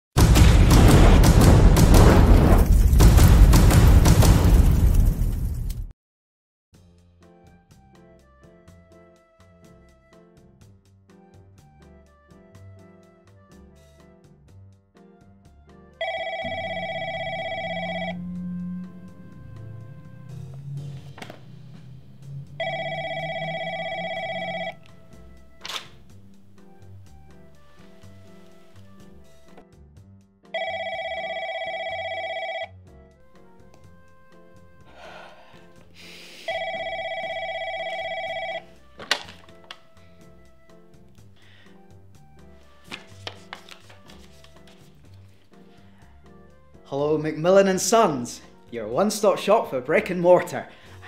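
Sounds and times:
soft background music: 7.0 - 51.0
desk telephone ringing: 16.0 - 18.3, 22.6 - 25.0, 30.5 - 32.8, 36.5 - 38.8.

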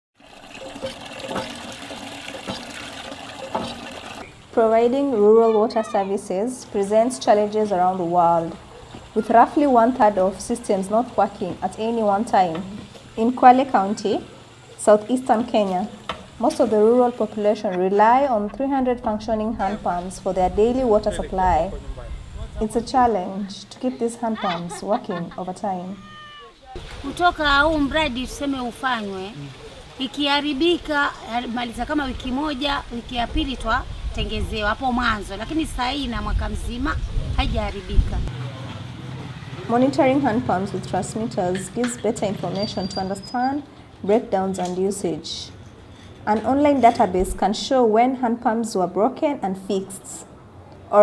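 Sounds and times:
water gushing into plastic bucket: 0.2 - 4.2
woman speaking: 4.6 - 8.6, 9.2 - 21.7, 22.6 - 26.2, 27.0 - 38.3, 39.7 - 45.6, 46.3 - 50.3.

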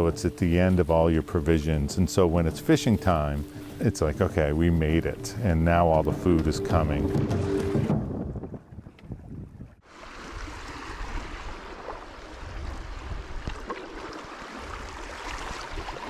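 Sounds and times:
water splashing against canoe: 0.6 - 16.0
paddle knocks: 5.9 - 9.3
wind on microphone: 6.9 - 16.0.

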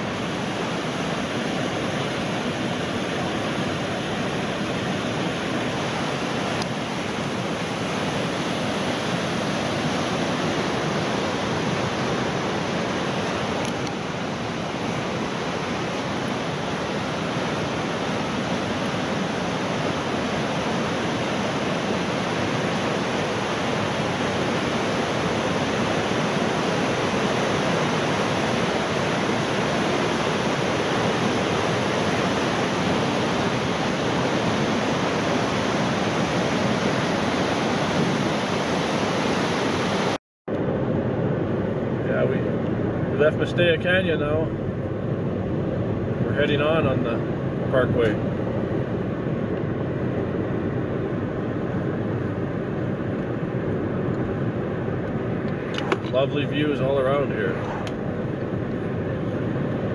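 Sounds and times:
white water rushing through gorge: 0.0 - 40.2.

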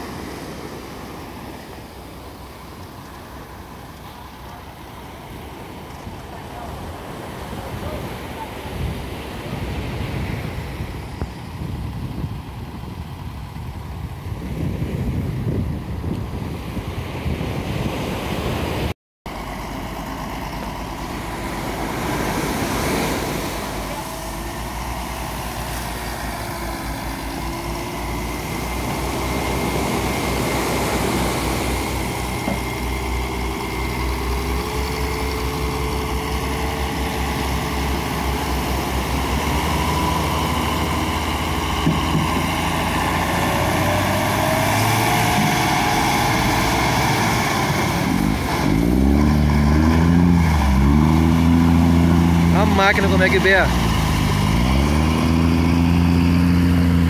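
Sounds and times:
waves washing: 0.0 - 57.0
tractor diesel engine working hard: 19.2 - 57.0.

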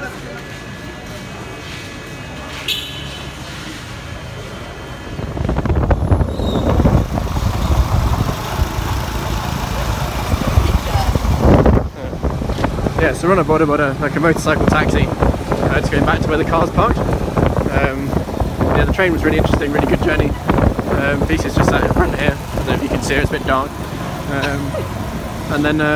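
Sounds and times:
murmur of voices: 0.0 - 5.7, 8.8 - 25.9
wind buffeting microphone: 5.1 - 25.9
small motorcycle engine: 6.2 - 11.8.

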